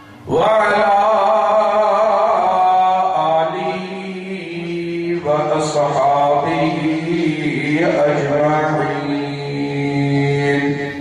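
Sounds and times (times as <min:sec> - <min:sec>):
man chanting into a microphone: 0:00.2 - 0:11.0.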